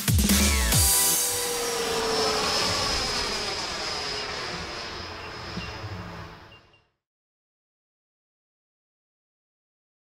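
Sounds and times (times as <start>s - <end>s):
jet aircraft flying past: 0.3s - 7.0s.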